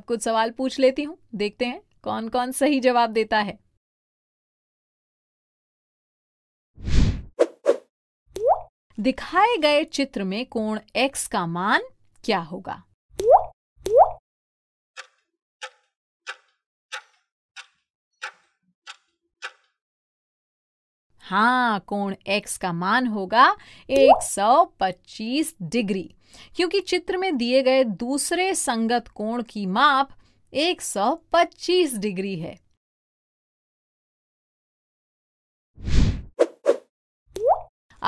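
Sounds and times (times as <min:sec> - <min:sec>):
stopwatch ticking: 0:15.0 - 0:19.7.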